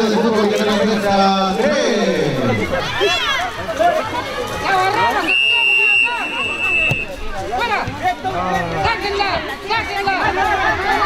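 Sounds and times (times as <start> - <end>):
referee's whistle blast: 5.3 - 7.1.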